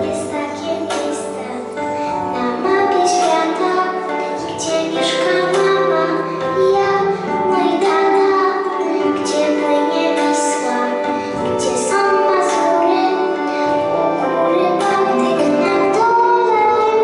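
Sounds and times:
girls singing into microphones: 0.0s - 17.0s
musical accompaniment: 0.0s - 17.0s.

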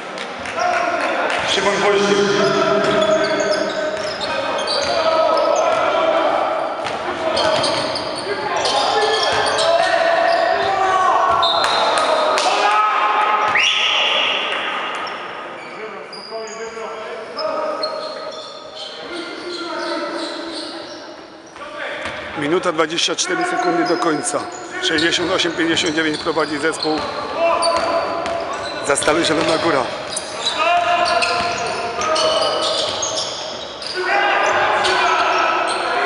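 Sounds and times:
voices echoing in a hall: 0.0s - 36.0s
sneakers squeaking on wooden court: 1.4s - 5.9s, 6.8s - 10.6s, 11.3s - 11.9s, 17.4s - 22.3s, 23.4s - 35.9s
referee's whistle: 1.6s - 5.0s, 13.5s - 14.1s.

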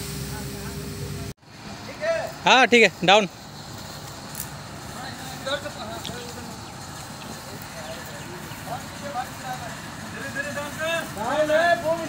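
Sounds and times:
diesel engine droning: 0.0s - 12.0s.

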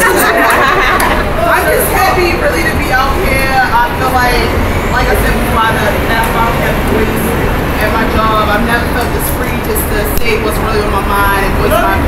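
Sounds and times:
crowd chatter: 0.0s - 12.0s.

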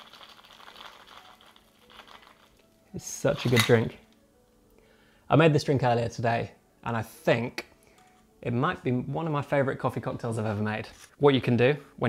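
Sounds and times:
patter of drips and crackles: 0.0s - 2.8s.

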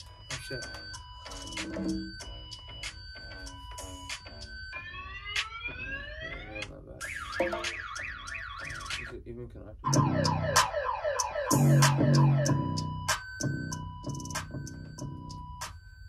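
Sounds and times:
beat with heavy bass: 0.0s - 4.5s, 6.4s - 8.0s, 9.9s - 15.7s
car alarm tones: 0.0s - 9.2s, 9.8s - 16.0s.

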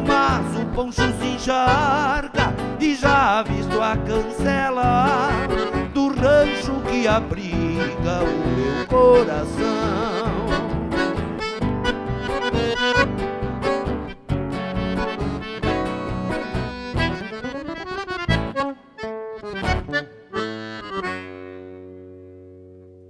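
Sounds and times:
accordion and guitars playing: 0.0s - 23.0s.

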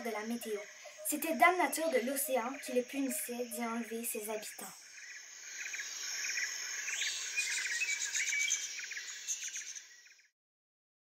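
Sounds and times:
high insect drone: 0.0s - 10.2s
birds chirping: 0.0s - 10.3s.

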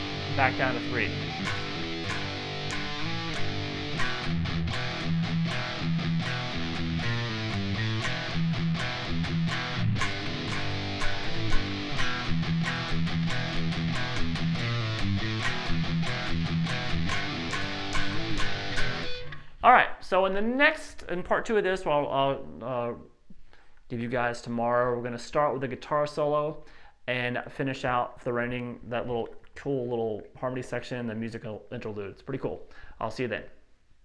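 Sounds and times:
electric guitar metal riff: 0.0s - 19.6s.

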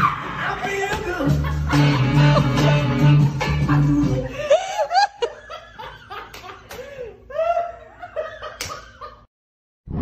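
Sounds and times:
music: 0.0s - 4.5s
person giggling: 3.7s - 9.3s.

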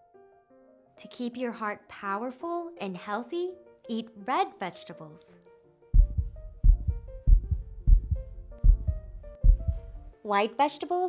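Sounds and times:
soft background music: 0.0s - 11.0s
heartbeat double thumps: 6.0s - 10.0s.

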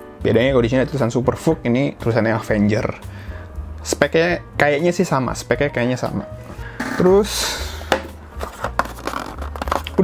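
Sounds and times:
cardboard rustling: 8.1s - 10.0s.

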